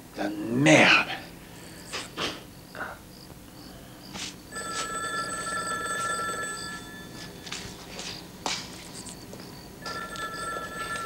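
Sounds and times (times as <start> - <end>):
telephone ringing: 4.5 - 7.6, 9.8 - 11.0.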